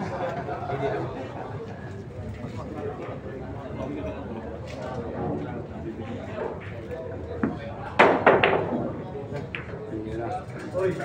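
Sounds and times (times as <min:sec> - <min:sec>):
pool balls clacking: 0:06.5 - 0:10.0.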